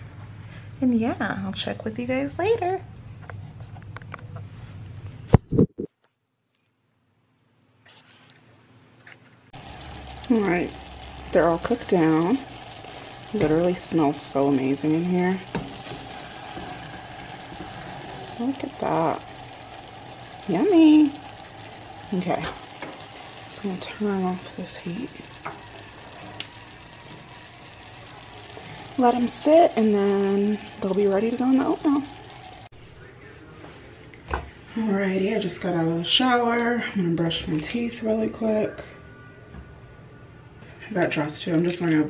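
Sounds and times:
apples sizzling in syrup: 9.6 - 32.7.

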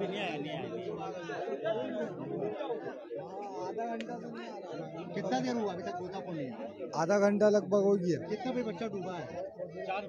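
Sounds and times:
many men talking at once: 0.0 - 10.0.

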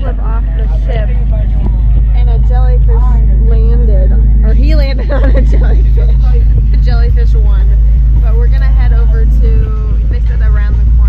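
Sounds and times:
powerboat engines droning: 0.0 - 11.0
voices: 0.0 - 11.0.

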